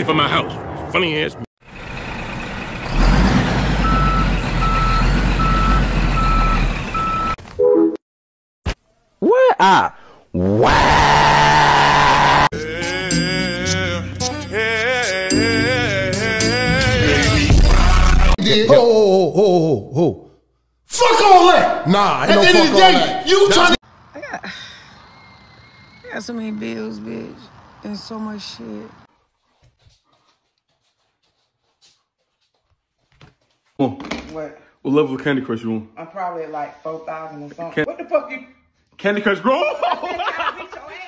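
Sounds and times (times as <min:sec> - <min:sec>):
man screaming: 0:09.2 - 0:12.6, 0:20.9 - 0:23.8
music with singing: 0:12.6 - 0:18.4.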